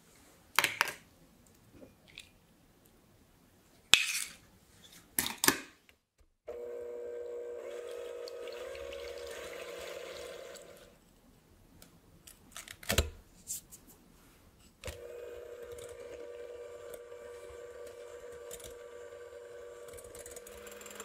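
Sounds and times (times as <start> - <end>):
electric hand mixer whisking: 6.5 - 11.0, 14.9 - 21.0.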